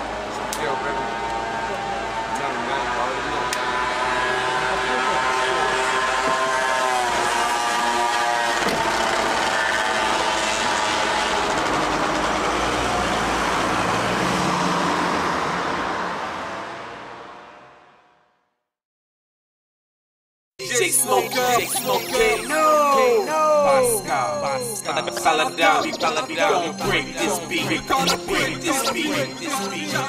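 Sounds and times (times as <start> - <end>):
traffic rushing noise: 0.0 - 18.2.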